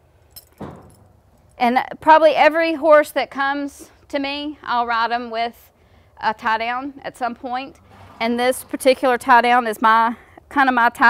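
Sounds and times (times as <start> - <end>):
metal bit and chain clinking: 0.3 - 1.6.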